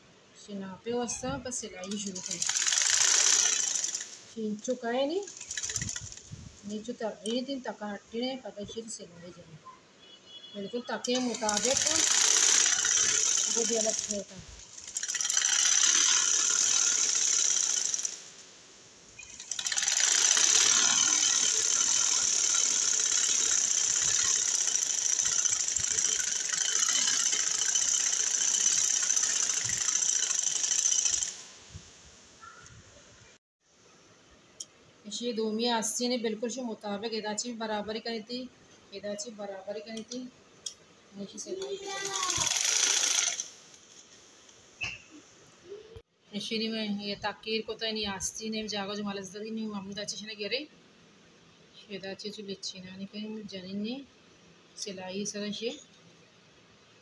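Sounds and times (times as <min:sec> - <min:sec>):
sewing machine whirring: 0:01.8 - 0:06.8, 0:11.0 - 0:18.4, 0:19.2 - 0:31.4, 0:41.8 - 0:43.6.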